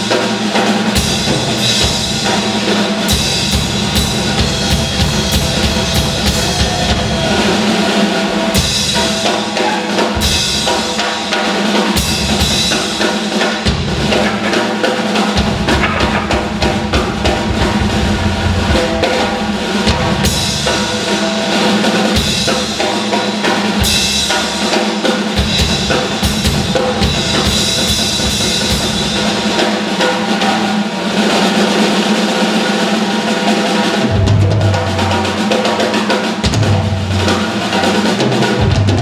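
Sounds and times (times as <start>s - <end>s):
drum kit playing blues groove: 0.0s - 39.0s
band holding notes: 15.1s - 22.9s.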